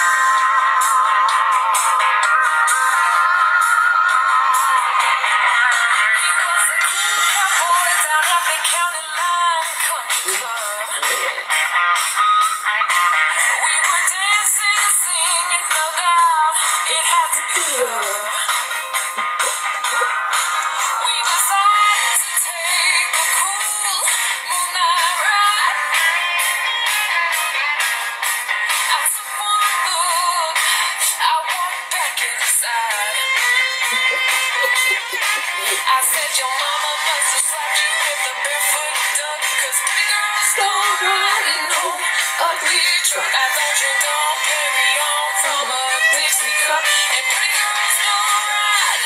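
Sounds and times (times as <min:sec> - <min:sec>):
woman singing over instrumental backing: 0:04.6 - 0:11.5, 0:13.5 - 0:18.6, 0:28.9 - 0:49.0.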